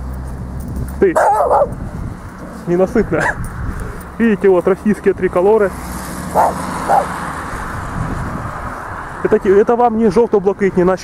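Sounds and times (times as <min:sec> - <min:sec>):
small dog barking: 0:01.2 - 0:01.8, 0:03.2 - 0:03.4, 0:06.3 - 0:07.2.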